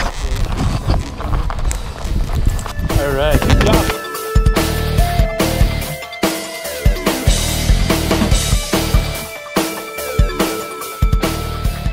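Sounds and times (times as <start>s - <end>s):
camera microphone handling knocks: 3.4s - 4.0s.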